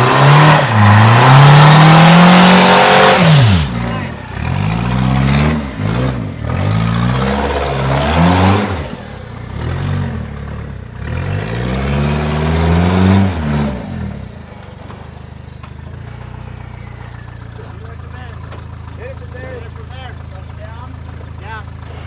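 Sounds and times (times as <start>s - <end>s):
buggy engine revving: 0.0s - 22.0s.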